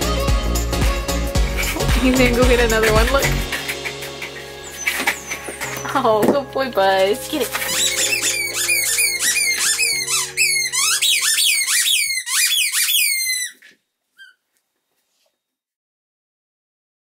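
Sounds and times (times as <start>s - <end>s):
squeaky toy squeaking: 1.6s - 3.8s, 4.6s - 6.0s, 7.4s - 14.4s.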